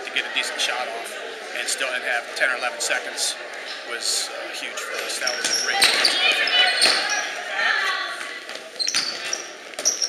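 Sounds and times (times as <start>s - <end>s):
crowd of voices: 0.0s - 10.0s
ball bouncing on hardwood court: 6.8s - 7.2s.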